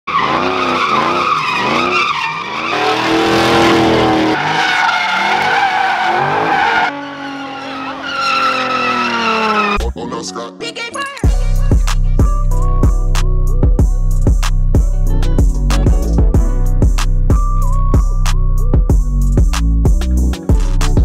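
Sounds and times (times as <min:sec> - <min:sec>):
engines revving hard: 0:00.1 - 0:09.8
tire squeal: 0:00.1 - 0:09.8.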